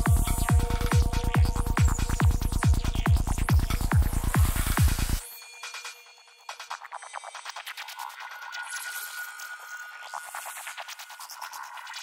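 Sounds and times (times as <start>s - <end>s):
trance kick and bassline: 0.0s - 8.2s.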